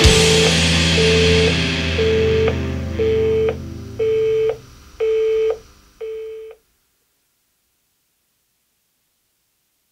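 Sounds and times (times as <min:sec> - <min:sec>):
heavy metal music: 0:00.0 - 0:04.1
electronic busy signal beeps: 0:00.0 - 0:06.6.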